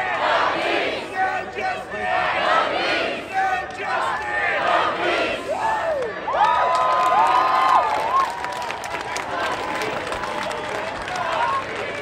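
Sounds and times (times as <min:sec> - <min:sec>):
crowd shouting and cheering: 0:00.0 - 0:12.0
people clapping: 0:05.8 - 0:12.0.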